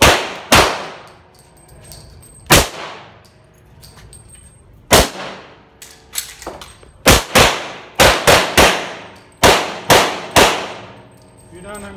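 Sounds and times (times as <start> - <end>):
pistol shots with ringing echo: 0.0 - 1.3, 2.5 - 3.3, 4.9 - 6.2, 7.0 - 11.1.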